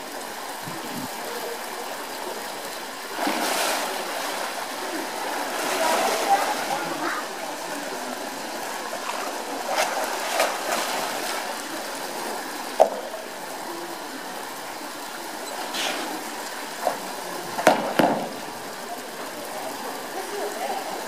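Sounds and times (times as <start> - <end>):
running water: 0.0 - 21.0
bear splashing in water: 3.1 - 7.4, 8.1 - 12.3
sharp knocks: 17.6 - 18.4.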